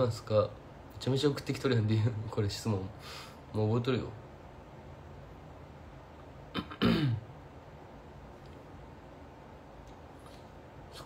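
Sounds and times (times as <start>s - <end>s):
man clearing his throat: 6.5s - 7.3s.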